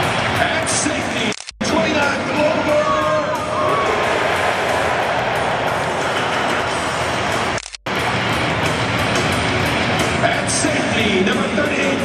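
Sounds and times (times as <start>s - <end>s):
music: 0.0s - 12.0s
stadium crowd noise: 0.0s - 12.0s.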